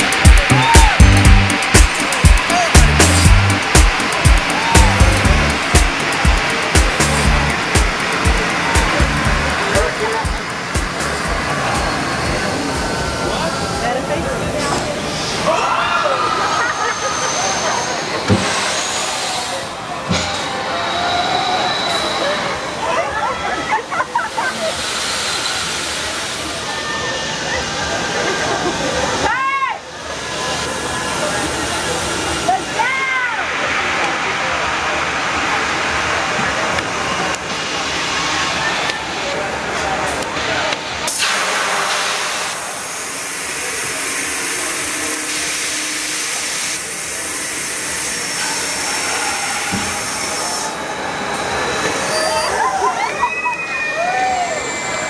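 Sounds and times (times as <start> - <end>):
rising and falling cries: 0.0 - 5.8, 51.1 - 55.0
loud rush of hissing air: 0.0 - 22.9, 24.0 - 53.2
crowd voices: 0.0 - 55.0.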